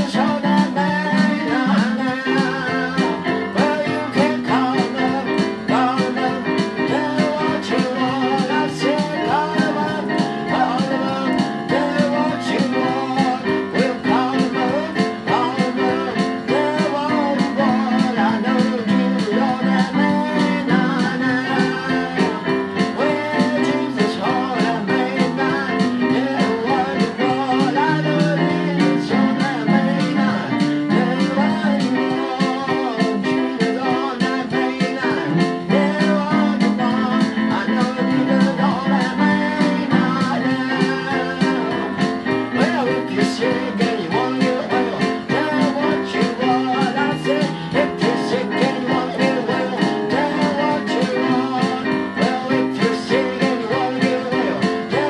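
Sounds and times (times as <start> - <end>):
electronic keyboard: 0.0 - 55.0
man singing: 0.0 - 55.0.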